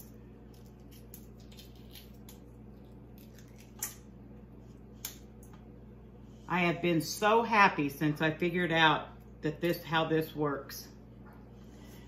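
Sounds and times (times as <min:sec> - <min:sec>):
eggshell crackling while peeled: 0:00.0 - 0:05.4
steady low hum: 0:00.0 - 0:12.0.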